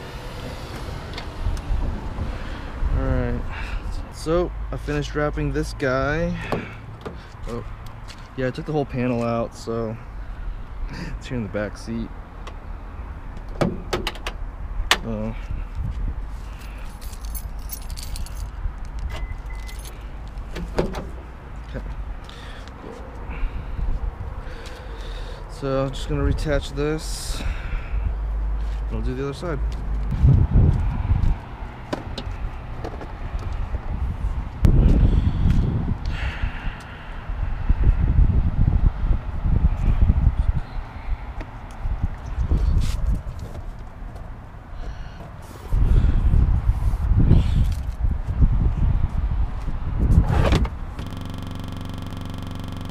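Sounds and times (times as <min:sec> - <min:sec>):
light metallic jingling: 0:16.5 - 0:20.1
short high beeps: 0:19.2 - 0:19.8, 0:51.0 - 0:52.9.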